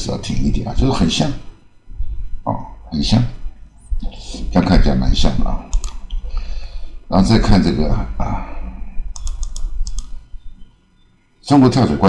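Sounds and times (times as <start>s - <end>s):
low steady hum: 0.0s - 12.0s
computer keyboard clicks: 5.7s - 6.2s, 9.1s - 10.2s.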